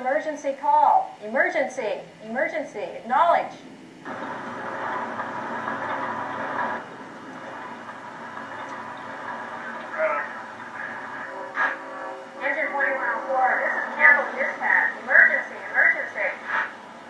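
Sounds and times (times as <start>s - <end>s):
radio static hiss: 0.0s - 17.0s.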